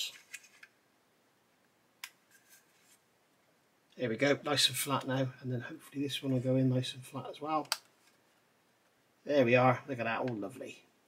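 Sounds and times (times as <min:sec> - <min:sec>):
scratchy rub of plastic parts: 0:00.0 - 0:00.8, 0:02.2 - 0:03.1.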